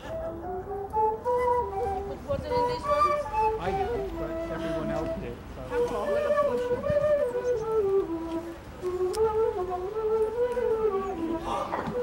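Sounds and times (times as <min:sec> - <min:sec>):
wooden flutes playing melody: 0:00.0 - 0:12.0.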